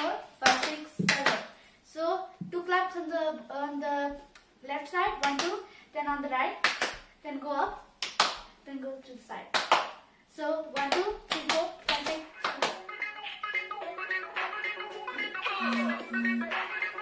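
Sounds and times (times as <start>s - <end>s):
hand claps: 0.0s - 1.5s, 5.2s - 5.6s, 6.6s - 7.1s, 8.0s - 8.5s, 9.6s - 10.0s, 10.8s - 12.8s
girl counting rhythm: 0.0s - 17.0s.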